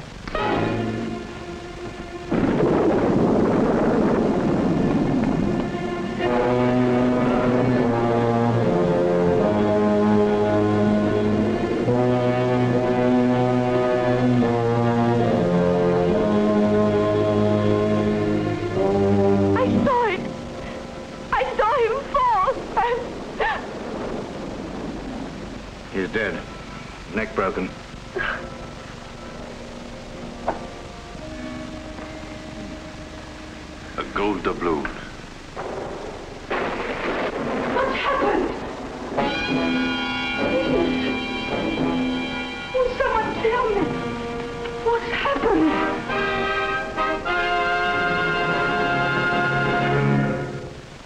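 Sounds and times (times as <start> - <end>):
steady rushing noise: 0.0 - 51.0
thunder rumble: 0.0 - 51.0
held music chord: 5.4 - 21.3, 26.2 - 34.1.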